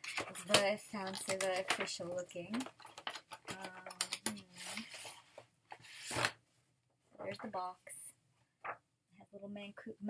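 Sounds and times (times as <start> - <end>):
light clicks of packaging: 0.0 - 5.2
card and paper rubbing and sliding: 4.3 - 6.4.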